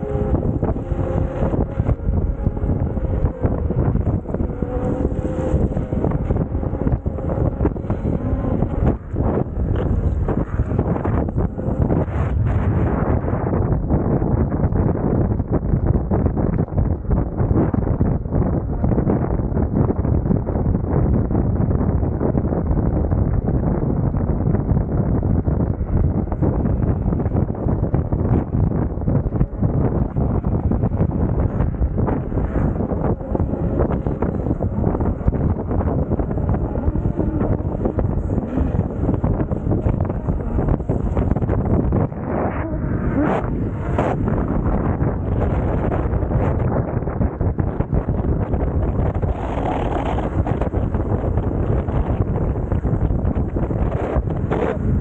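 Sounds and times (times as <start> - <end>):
faint steady whine: 0.0 - 55.0
wind buffeting microphone: 0.0 - 55.0.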